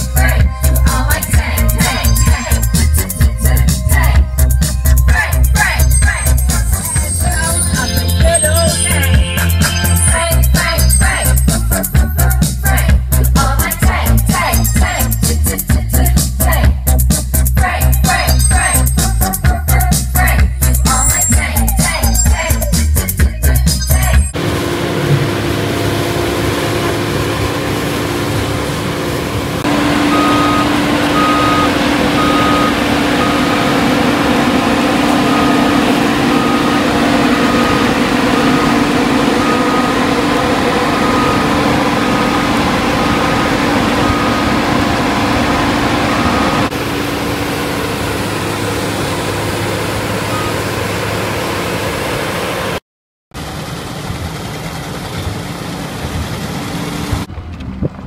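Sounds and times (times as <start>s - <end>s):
combine harvester running: 0.0s - 19.3s, 24.3s - 52.8s, 53.4s - 58.0s
short warning beeps: 4.8s - 11.8s, 20.9s - 24.3s, 30.0s - 46.7s.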